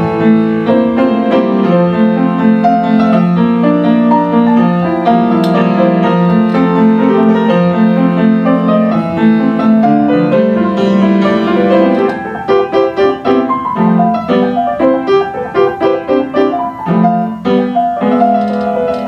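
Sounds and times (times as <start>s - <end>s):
upright piano playing: 0.0s - 19.0s.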